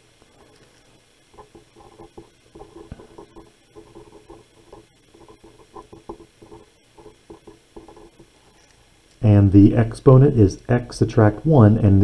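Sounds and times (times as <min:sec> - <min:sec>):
felt-tip pen squeaking on paper: 0:01.4 - 0:08.7.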